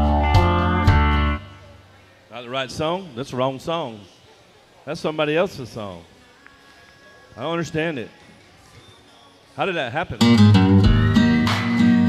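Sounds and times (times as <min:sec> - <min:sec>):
karaoke backing track with guitar: 0:00.0 - 0:03.3, 0:05.0 - 0:12.0.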